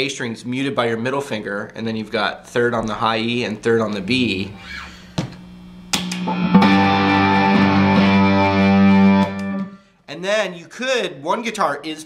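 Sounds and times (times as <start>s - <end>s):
distorted electric guitar strumming: 5.9s - 9.8s.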